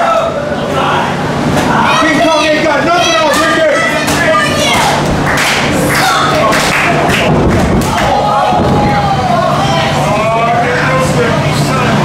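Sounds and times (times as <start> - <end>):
crowd shouting: 0.0 - 10.5.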